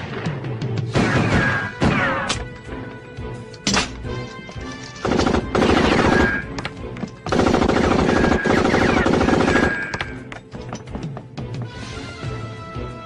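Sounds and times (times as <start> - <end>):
dramatic film score: 0.0 - 13.0
rapid gunfire bursts: 5.0 - 6.5, 7.3 - 10.0.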